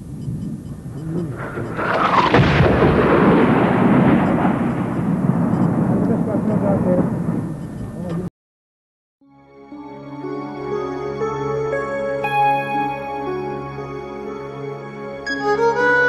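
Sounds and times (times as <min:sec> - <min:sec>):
rolling rumble: 0:00.0 - 0:08.3
artillery shell explosion: 0:01.4 - 0:08.0.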